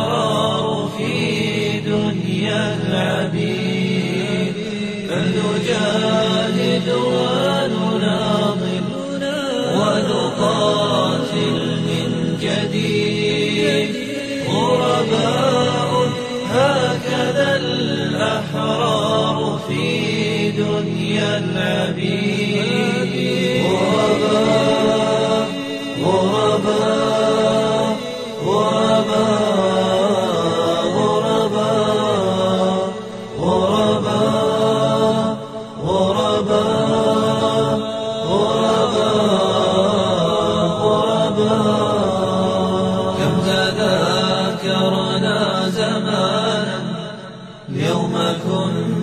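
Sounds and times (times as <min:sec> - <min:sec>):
low vocal drone: 0:00.0 - 0:49.0
men singing a cappella: 0:00.0 - 0:49.0.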